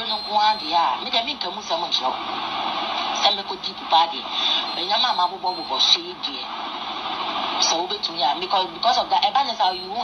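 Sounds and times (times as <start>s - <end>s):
radio hiss: 0.0s - 10.0s.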